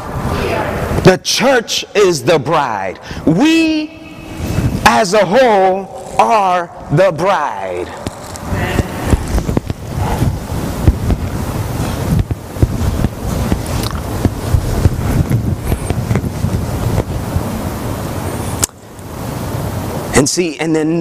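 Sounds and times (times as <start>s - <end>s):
microphone handling rustle: 7.8s - 19.4s.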